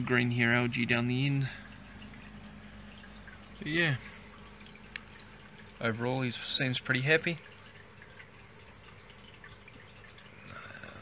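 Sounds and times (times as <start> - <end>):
low steady hum: 0.0 - 11.0
water trickling and dripping: 0.0 - 11.0.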